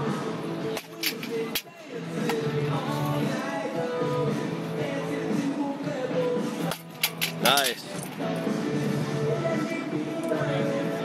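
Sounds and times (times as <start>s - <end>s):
guitar background music: 0.0s - 11.0s.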